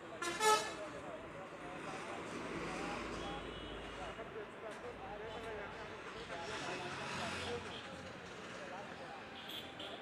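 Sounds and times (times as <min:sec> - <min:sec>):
street traffic: 0:00.0 - 0:10.0.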